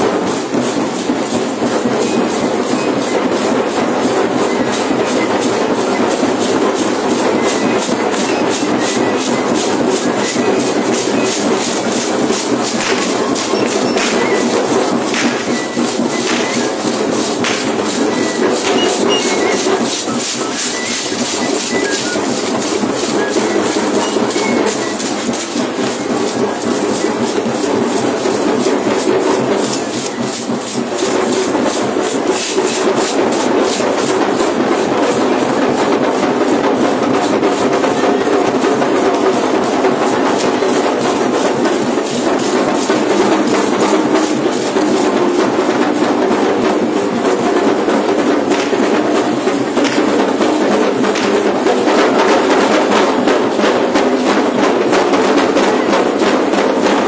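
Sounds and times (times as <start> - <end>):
drum beating dance rhythm: 0.0 - 57.0
jingle rattles shaken: 0.0 - 57.0.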